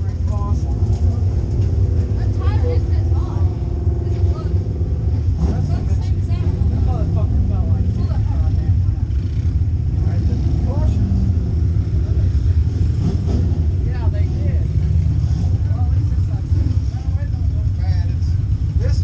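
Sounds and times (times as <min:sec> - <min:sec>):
indistinct voices talking: 0:00.0 - 0:19.0
race car engine idling: 0:00.0 - 0:19.0.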